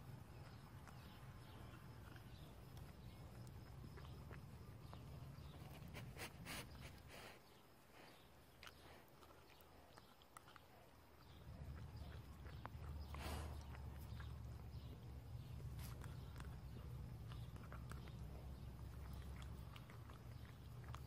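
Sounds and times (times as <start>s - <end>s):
puppy licking ice cube: 8.6s - 21.0s.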